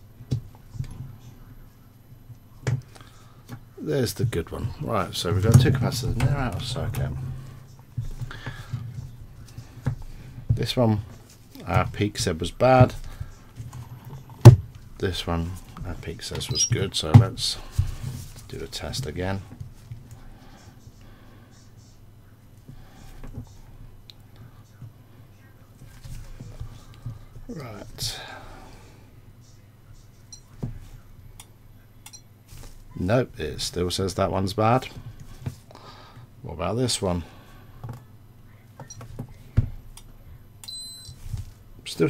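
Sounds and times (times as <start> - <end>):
low steady hum: 0.0 - 42.0
faint handling noise: 0.2 - 33.0, 41.0 - 42.0.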